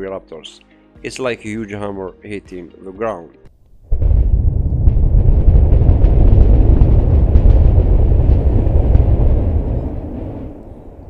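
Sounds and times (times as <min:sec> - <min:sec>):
rocket engines roaring: 0:03.9 - 0:11.0.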